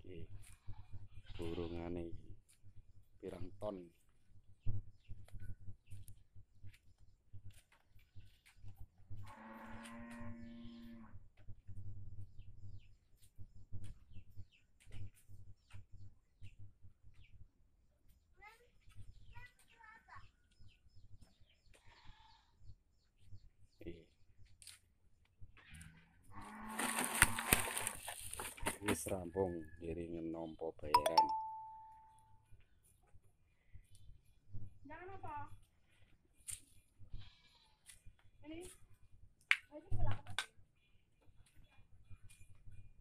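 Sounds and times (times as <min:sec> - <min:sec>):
small birds chirping: 0:00.0 - 0:09.0, 0:09.7 - 0:24.9, 0:37.8 - 0:43.0
plastic sacks rustling through vegetation: 0:26.6 - 0:28.8.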